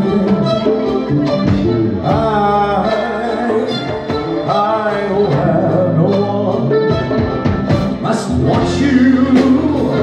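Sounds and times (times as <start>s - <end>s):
male singer: 0.0s - 0.9s, 1.9s - 10.0s
live band playing a slow ballad: 0.0s - 10.0s.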